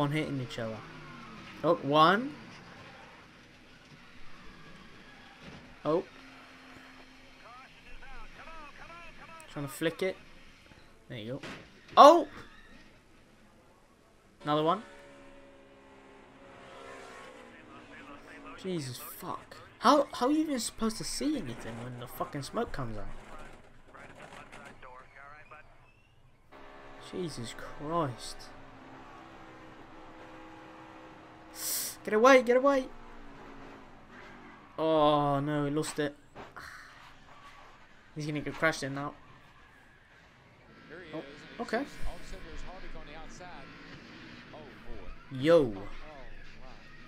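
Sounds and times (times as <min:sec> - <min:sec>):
race car engine drone: 0:00.0 - 0:47.0
race car noise: 0:00.0 - 0:47.0
commentator speaking: 0:01.6 - 0:02.4, 0:07.4 - 0:10.3, 0:14.4 - 0:14.9, 0:17.3 - 0:25.7, 0:27.0 - 0:28.5, 0:31.6 - 0:32.9, 0:38.2 - 0:39.2, 0:40.9 - 0:43.8, 0:44.6 - 0:46.9.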